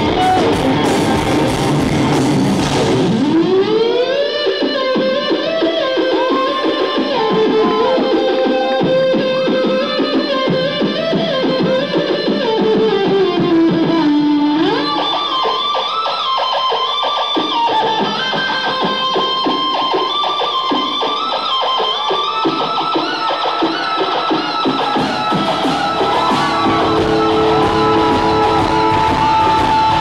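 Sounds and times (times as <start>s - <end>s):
electric guitar bending and picking: 0.0s - 30.0s
live rock band: 0.0s - 30.0s.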